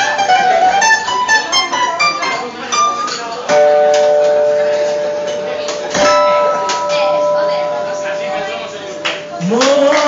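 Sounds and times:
guitar chord struck: 0.2s - 9.6s
acoustic guitar chord ringing: 0.2s - 9.9s.

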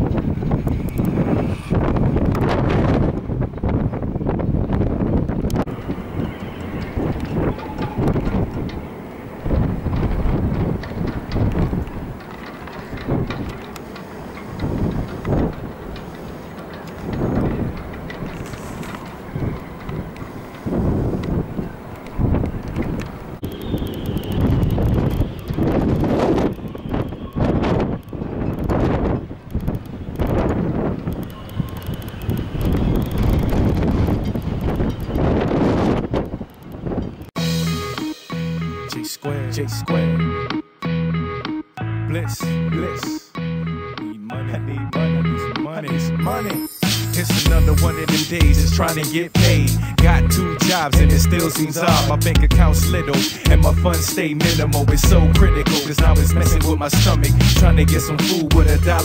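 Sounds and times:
gusty wind on microphone: 0.0s - 37.4s.

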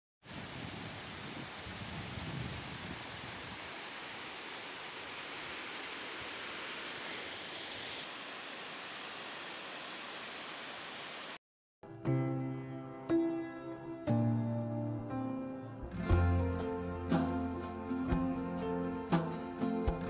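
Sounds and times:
wind buffeting microphone: 0.3s - 3.7s.

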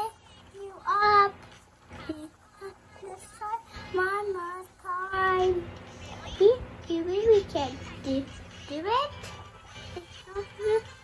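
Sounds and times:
child singing: 2.0s - 11.0s.

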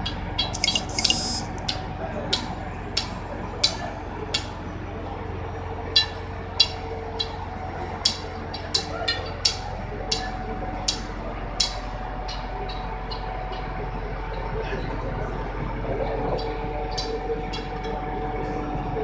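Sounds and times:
low machinery hum: 0.0s - 19.0s.

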